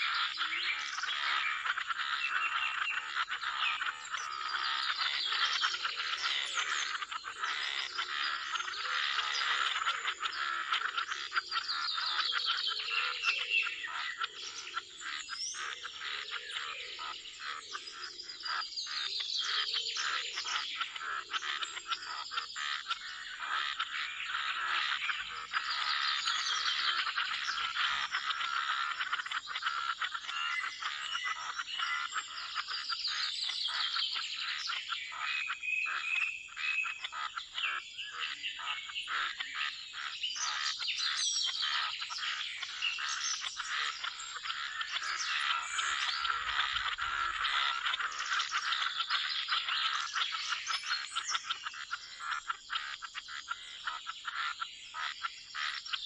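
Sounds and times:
birds chirping: 0.0s - 56.0s
frogs calling in pulsing trills: 0.0s - 56.0s.

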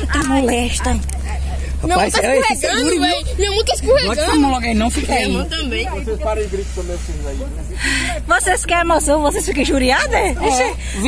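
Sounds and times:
vehicle driving on dirt road: 0.0s - 11.0s
short hiss: 6.4s - 7.5s.

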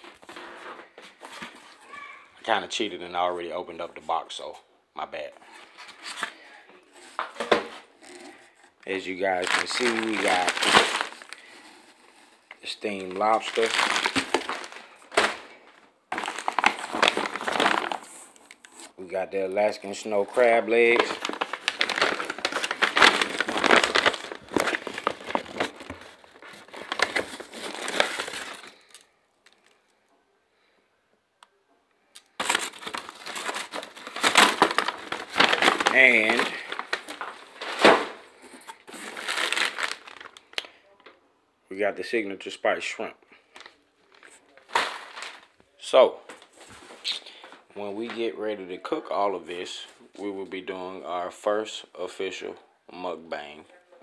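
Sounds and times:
plastic bags crinkling: 5.4s - 29.8s, 32.2s - 40.8s, 43.5s - 48.2s.

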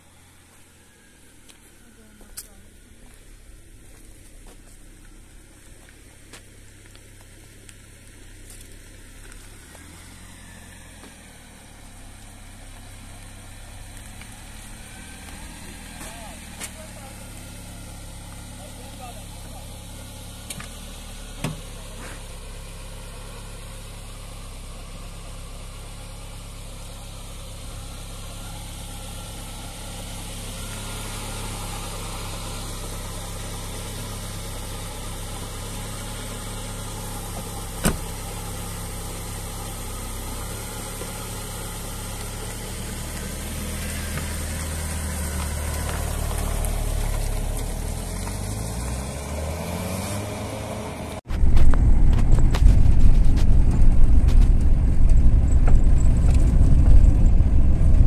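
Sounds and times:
car engine idling: 0.0s - 58.0s
car pulling away over gravel: 0.0s - 58.0s.

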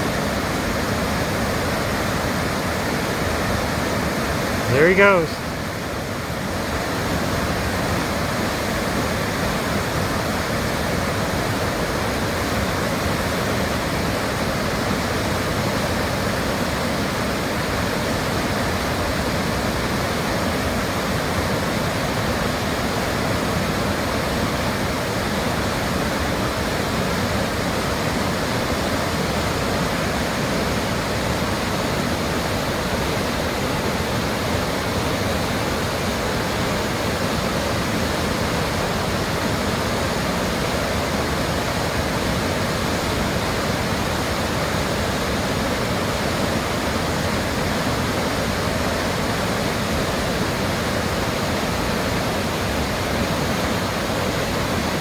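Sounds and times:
whitewater rapids roaring: 0.0s - 55.0s.

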